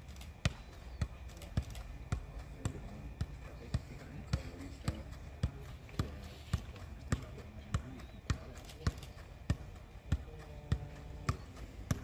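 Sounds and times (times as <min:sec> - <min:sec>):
football thuds on foot: 0:00.4 - 0:12.0.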